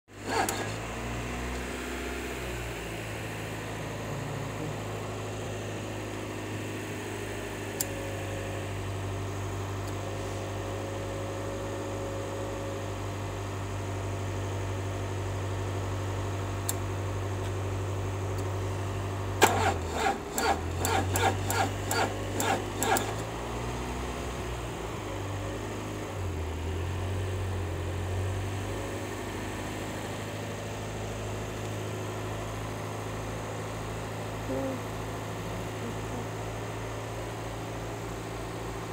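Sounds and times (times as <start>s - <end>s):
car engine idling: 2.2s - 12.9s.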